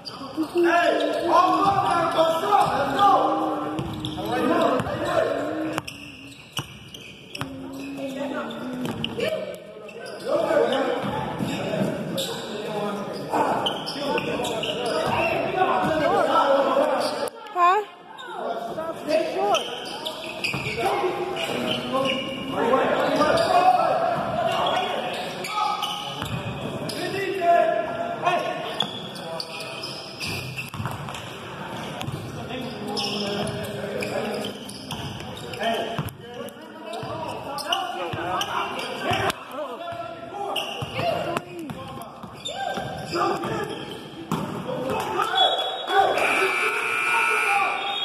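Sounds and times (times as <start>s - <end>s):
voices calling out in a gym: 0.0s - 48.0s.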